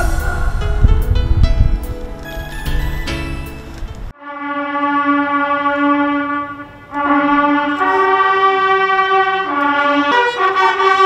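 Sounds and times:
bugles playing a fanfare: 4.2 - 11.0.

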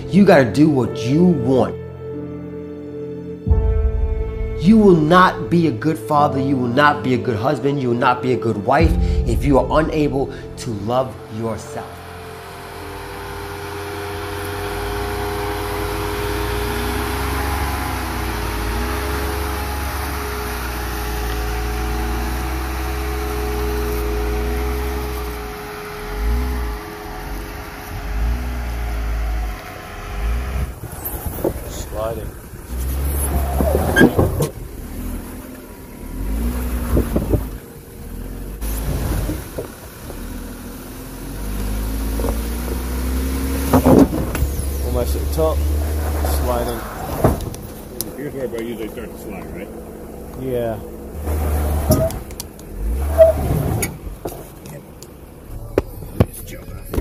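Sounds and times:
car engine crawling over rock: 8.8 - 57.0.

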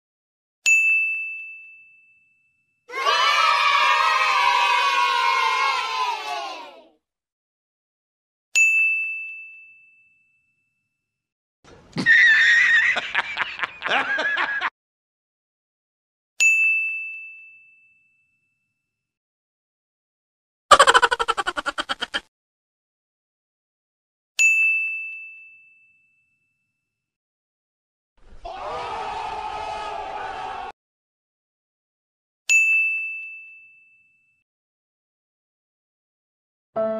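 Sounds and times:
bell-like ding: 0.7 - 2.8, 8.6 - 10.9
high wavering laughing cry: 12.0 - 14.7, 20.7 - 22.2.

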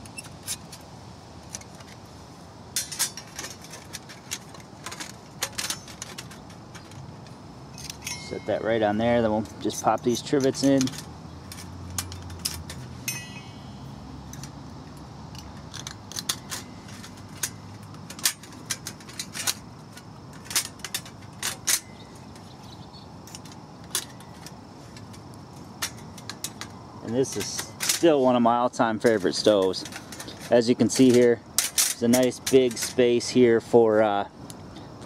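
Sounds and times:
metal bars clicking and clinking: 2.7 - 34.2
metallic ring: 7.7 - 9.0, 12.0 - 14.1.

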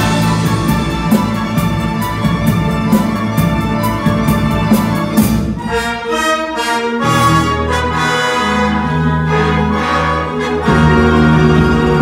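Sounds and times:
small orchestra playing classical music: 0.0 - 12.0.

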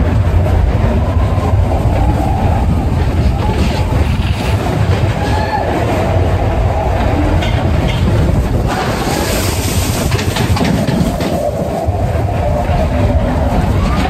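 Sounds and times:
roller coaster wheels rumbling and rattling: 0.0 - 14.0.

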